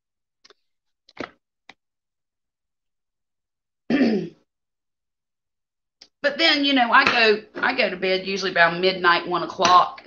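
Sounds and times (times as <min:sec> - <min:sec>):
woman clearing throat: 0:03.9 - 0:04.5.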